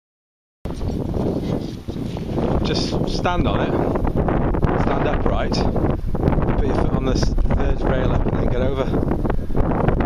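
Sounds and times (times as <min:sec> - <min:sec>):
wind buffeting microphone: 0:00.7 - 0:10.0.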